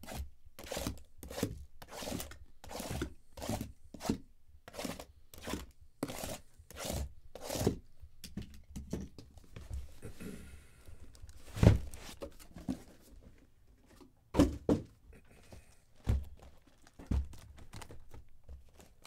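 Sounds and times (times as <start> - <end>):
plastic and cardboard rustling: 10.9 - 19.0.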